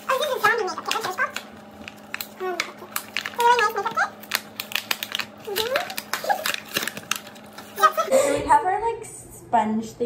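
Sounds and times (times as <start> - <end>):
packaging crackling and tearing: 0.0 - 8.1.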